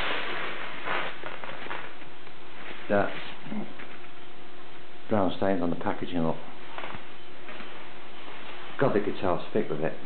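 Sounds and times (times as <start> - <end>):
packaging crackling rustles: 0.0 - 4.2
steady handling hiss: 0.0 - 10.0.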